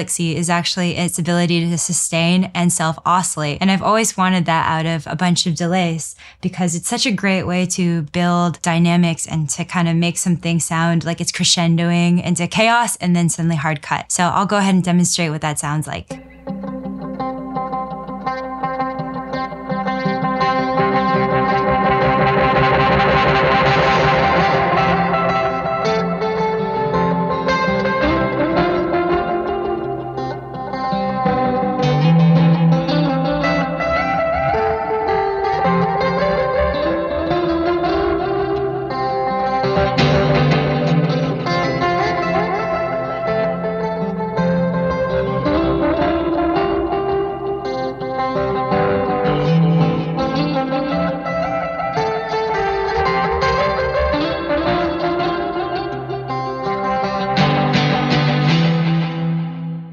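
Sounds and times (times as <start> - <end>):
electric guitar riff with echo: 0.0 - 59.9.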